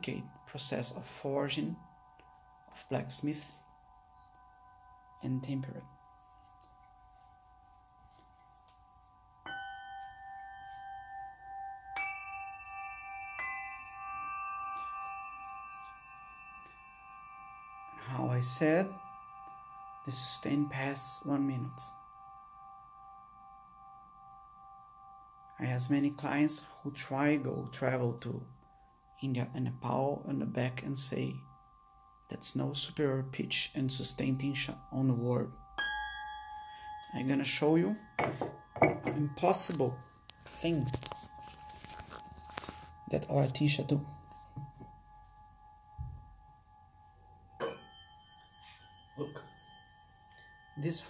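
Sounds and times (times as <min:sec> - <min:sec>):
tingsha ringing: 0:00.0 - 0:51.0.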